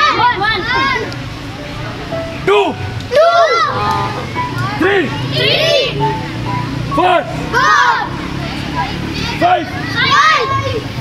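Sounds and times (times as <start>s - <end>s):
children shouting in unison: 0.0s - 1.1s, 3.1s - 6.1s, 7.4s - 11.0s.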